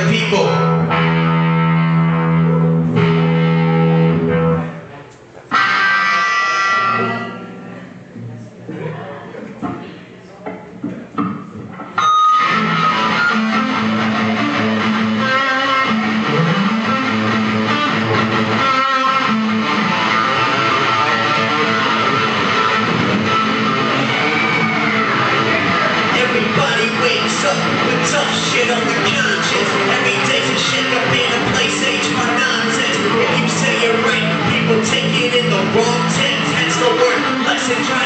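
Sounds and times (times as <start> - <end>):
live rock band playing: 0.0 - 4.6, 5.5 - 7.8, 12.0 - 38.0
electric guitar chord ringing: 0.4 - 4.7, 5.5 - 8.0, 12.0 - 37.5.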